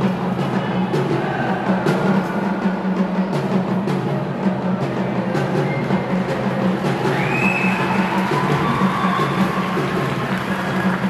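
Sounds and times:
drums beating steady rhythm: 0.0s - 11.0s.

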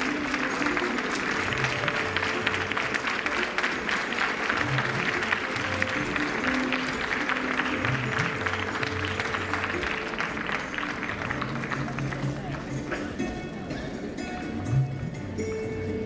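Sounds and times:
audience applauding: 0.0s - 13.2s
instrumental music: 0.0s - 16.0s.

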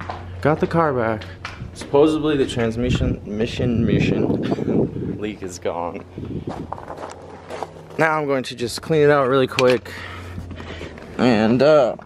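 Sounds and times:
footsteps walking: 0.0s - 3.2s, 6.0s - 9.5s.

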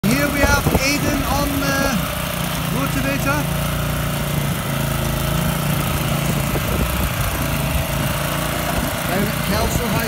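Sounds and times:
person talking: 0.0s - 2.1s, 2.7s - 3.5s
small petrol engine running: 0.0s - 10.0s.

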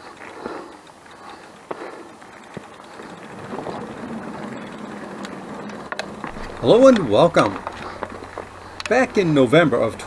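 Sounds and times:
bike tyres on trail: 0.0s - 10.0s
low hum: 0.0s - 10.0s.

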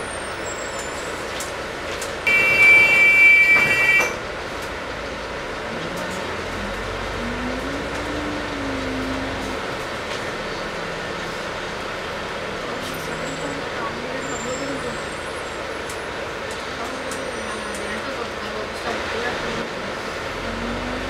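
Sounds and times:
bus engine rumble and whine: 0.0s - 21.0s
low drone: 5.6s - 11.0s.

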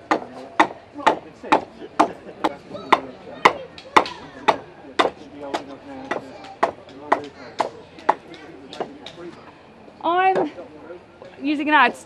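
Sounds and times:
adze chopping into wooden plank: 0.1s - 3.0s.

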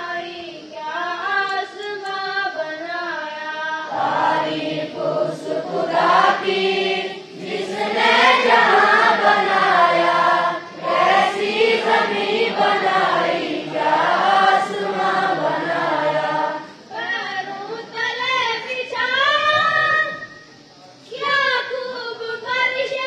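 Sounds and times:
boys chanting a prayer in unison: 0.0s - 23.0s.

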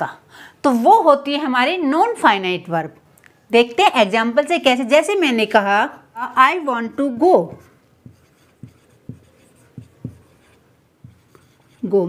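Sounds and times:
marker writing on whiteboard: 7.2s - 12.0s.

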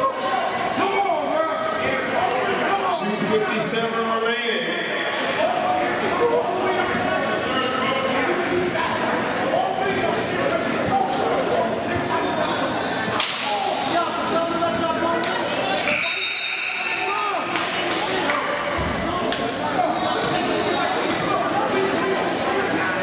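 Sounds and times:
voices echoing in gymnasium: 0.0s - 23.0s.

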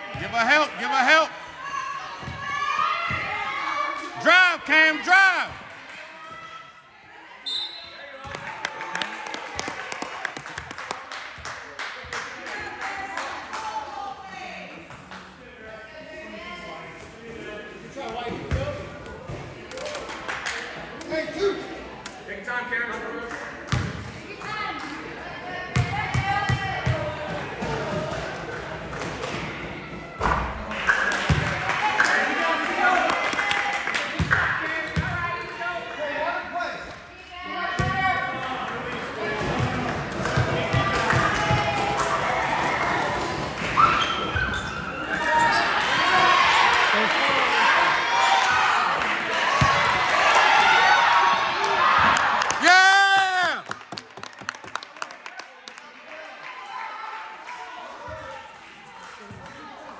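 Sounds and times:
chatter and shouts: 0.0s - 9.2s, 12.3s - 53.6s.

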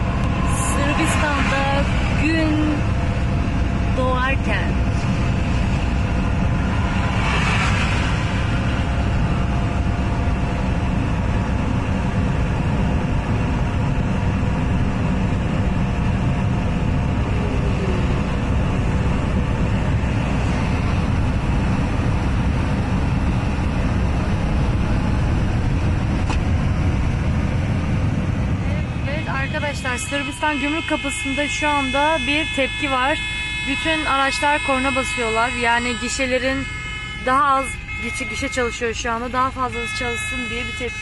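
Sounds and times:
car road and engine noise: 0.0s - 41.0s.

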